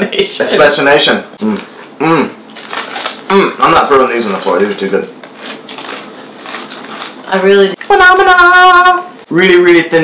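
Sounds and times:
chips being chewed: 2.5 - 3.3, 5.2 - 7.3
plastic bag crinkling: 2.5 - 3.3, 5.2 - 7.4.

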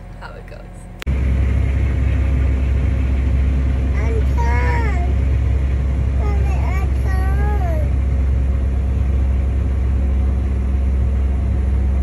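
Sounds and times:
tractor engine rumble: 1.0 - 12.0.

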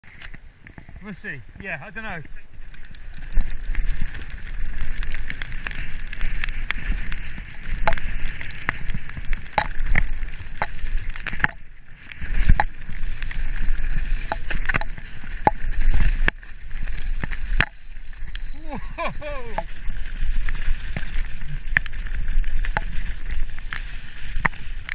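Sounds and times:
wind rumble on camera: 0.0 - 24.9
tyres rolling on dirt trail: 0.1 - 24.9.

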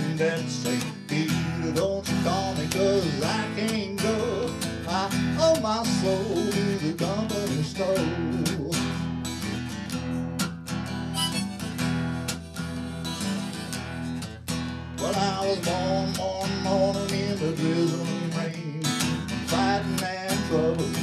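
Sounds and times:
strummed acoustic guitar: 0.0 - 21.0
harmonica melody: 11.0 - 11.8.

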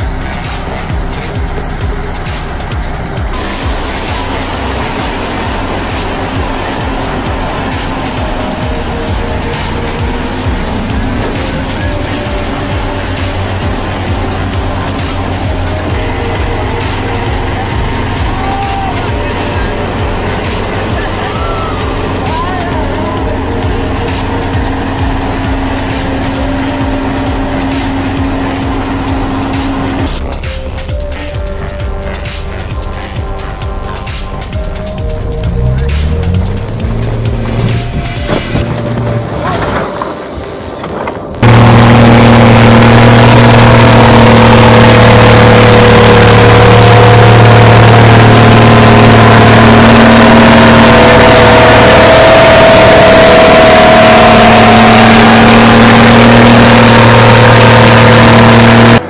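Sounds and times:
electronic music with steady beat: 0.0 - 38.9, 41.4 - 59.0
vehicle engine noise: 0.0 - 59.0.

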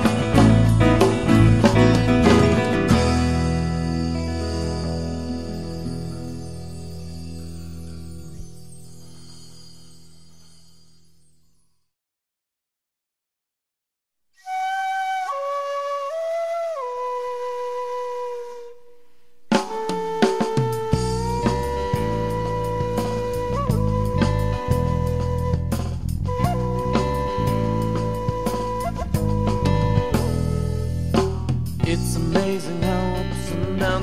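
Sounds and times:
rock band playing: 0.0 - 8.2, 19.6 - 34.0.

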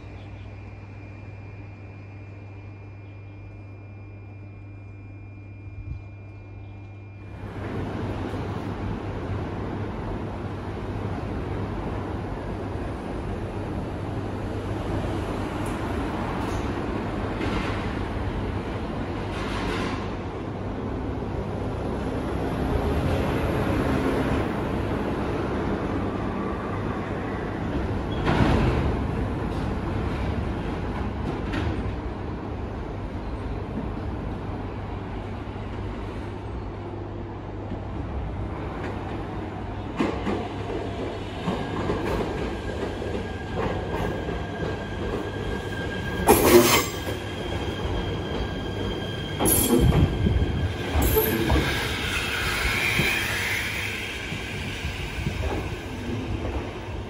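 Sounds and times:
electric train rumbling: 0.0 - 57.0
train clanks: 15.6 - 20.4, 27.6 - 32.2, 38.7 - 57.0
high-pitched wheel squeal: 45.4 - 55.4.

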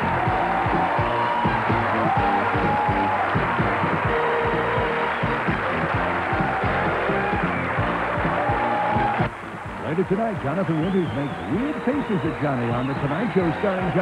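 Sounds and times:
band playing theme music: 0.0 - 14.0.

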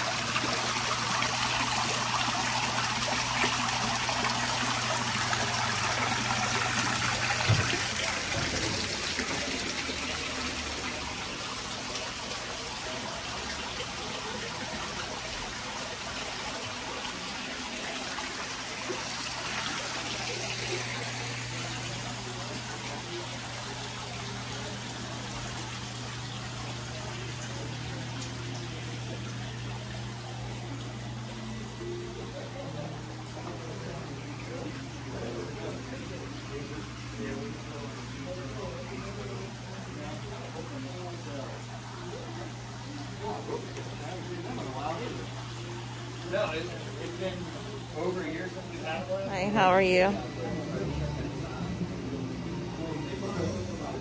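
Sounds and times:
waterfall splashing into pond: 0.0 - 29.8.

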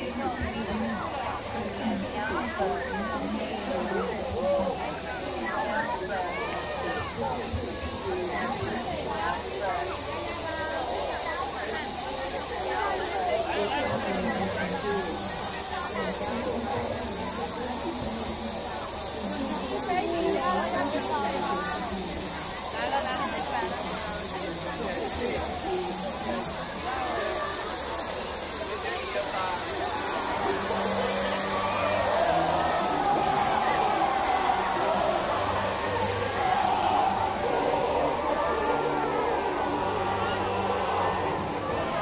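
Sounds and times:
crowd chatter: 0.0 - 42.0
fountain water jets spraying: 0.0 - 42.0.

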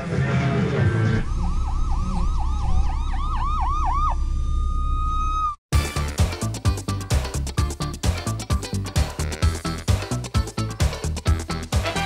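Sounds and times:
police siren yelp: 1.1 - 5.6.

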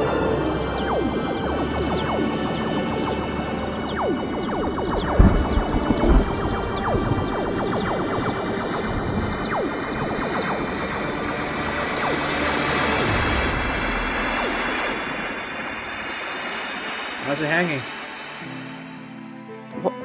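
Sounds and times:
rushing rumble: 0.0 - 19.1
falling whistling sweeps: 0.0 - 20.0
film score music: 0.0 - 20.0
explosion boom: 3.9 - 18.9.

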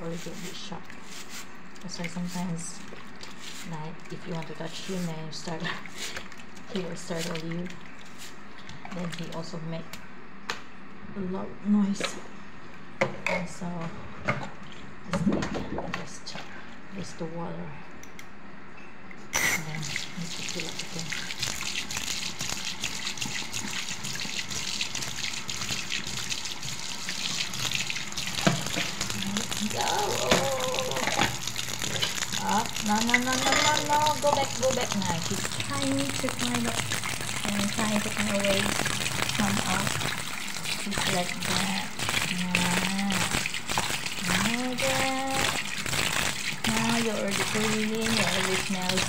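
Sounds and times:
tap water running into sink: 19.6 - 49.0
woman's vocal sound: 29.4 - 31.4.

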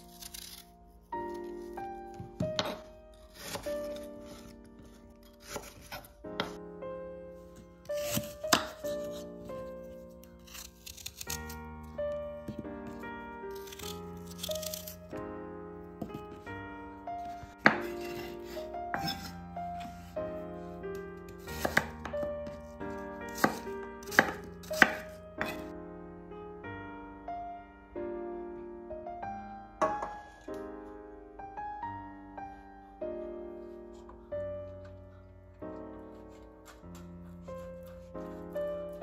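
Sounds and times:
knife cutting apple on board: 0.0 - 6.6, 7.8 - 15.0, 17.2 - 20.7, 21.3 - 25.7, 36.1 - 38.6
background music: 0.0 - 39.0
knife chopping on wooden board: 8.0 - 9.2, 17.3 - 18.3, 21.4 - 22.6, 23.3 - 25.7.

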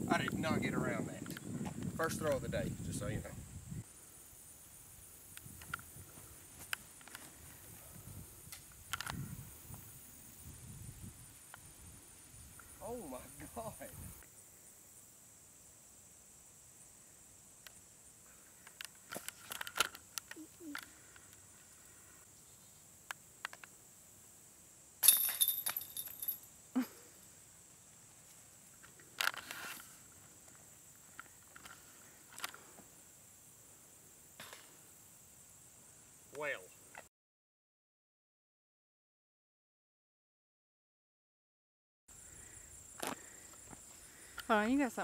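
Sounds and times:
chains jingling: 25.0 - 26.5
disc hitting metal chains: 25.0 - 26.5.

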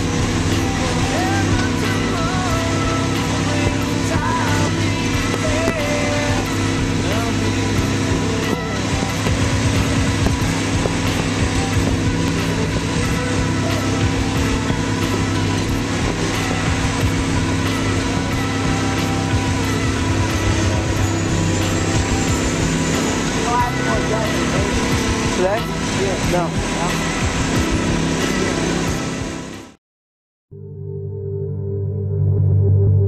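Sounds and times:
excavator diesel engine running: 0.0 - 29.8.

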